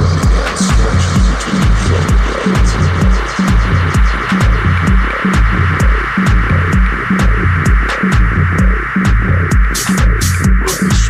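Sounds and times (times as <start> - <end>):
house dance music: 0.0 - 11.0.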